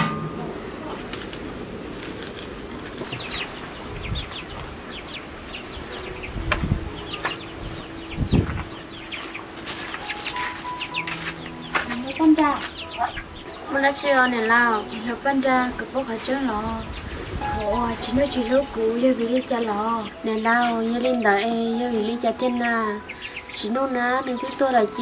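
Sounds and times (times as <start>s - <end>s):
chickens clucking: 2.2s - 25.0s.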